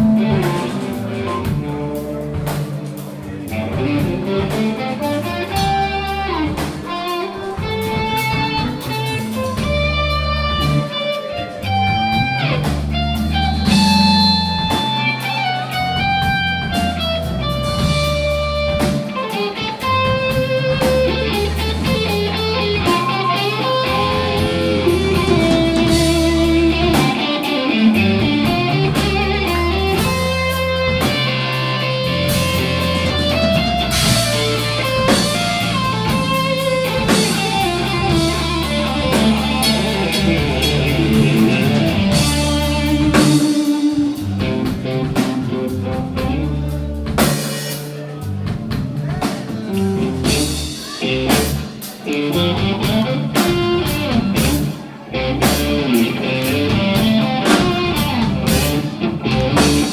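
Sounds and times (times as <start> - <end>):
bass guitar: 0.0 - 59.9
drum kit with cymbals: 0.0 - 59.9
electric guitar lines: 0.0 - 59.9.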